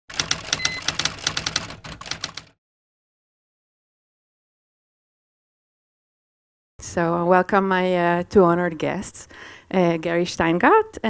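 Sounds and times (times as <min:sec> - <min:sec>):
typewriter keys clacking: 0:00.1 - 0:02.5.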